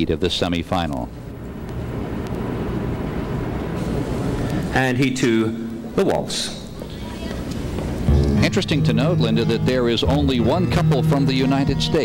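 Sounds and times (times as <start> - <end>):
low hall background rumble: 0.0 - 12.0
low mains hum: 0.0 - 12.0.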